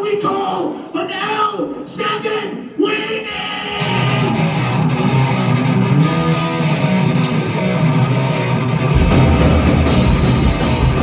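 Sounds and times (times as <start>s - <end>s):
electric guitar: 3.7s - 11.0s
bass guitar: 3.8s - 11.0s
drums: 3.8s - 11.0s.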